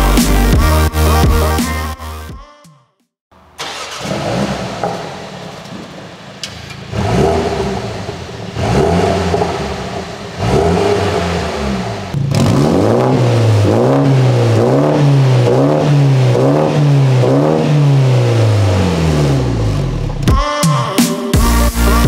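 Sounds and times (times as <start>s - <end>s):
car engine revving: 3.4s - 20.3s.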